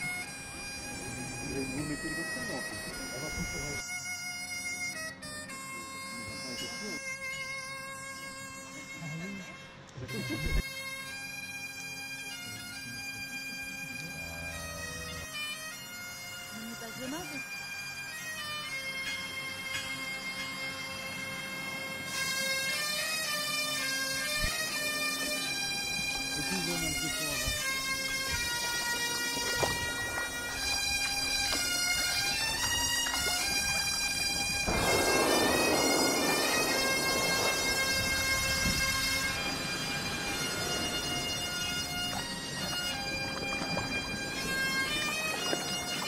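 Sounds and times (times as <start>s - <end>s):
bagpipe music: 0.0s - 46.0s.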